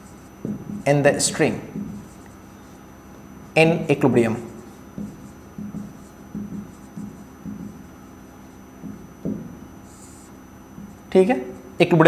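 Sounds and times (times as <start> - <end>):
marker writing on whiteboard: 0.0 - 11.6.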